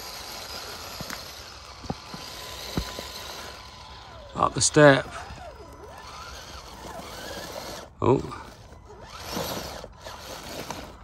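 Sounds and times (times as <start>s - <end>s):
tyres knocking over stones: 0.0s - 4.1s
toy car motor and drivetrain: 0.0s - 11.0s.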